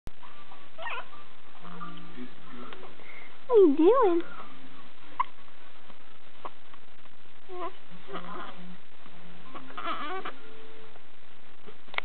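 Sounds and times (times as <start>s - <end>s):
steady background hiss: 0.2s - 12.0s.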